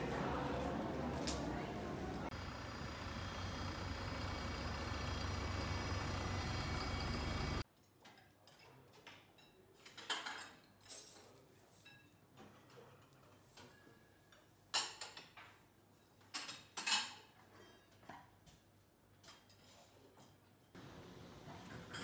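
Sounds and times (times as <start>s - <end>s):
airport terminal hum and rush: 0.0s - 7.6s
dishes and cutlery clinking: 7.8s - 18.6s, 19.2s - 20.8s, 21.4s - 22.0s.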